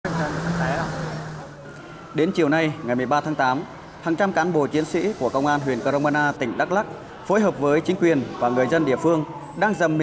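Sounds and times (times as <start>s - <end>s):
engine hum: 0.0s - 1.7s.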